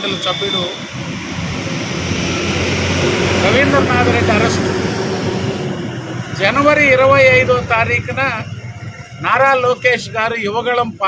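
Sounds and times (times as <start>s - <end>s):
man speaking into microphone: 0.0s - 0.8s, 3.4s - 4.8s, 6.3s - 8.5s, 9.2s - 11.0s
engine-like rumble: 0.2s - 10.3s.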